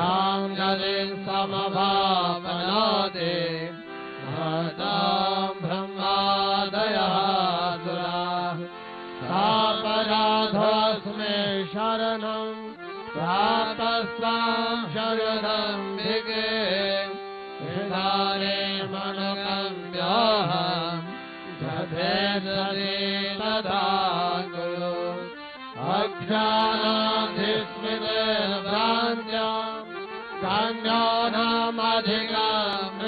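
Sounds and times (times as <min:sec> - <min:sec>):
harmonium holding notes: 0:00.0 - 0:33.0
men chanting hymn verses: 0:00.0 - 0:33.0.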